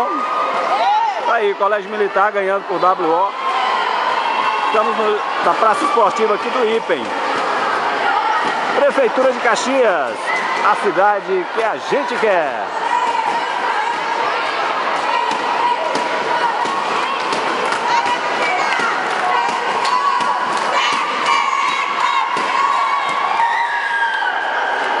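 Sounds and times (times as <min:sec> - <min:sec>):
girls cheering and shouting: 0:00.0 - 0:01.3, 0:12.7 - 0:25.0.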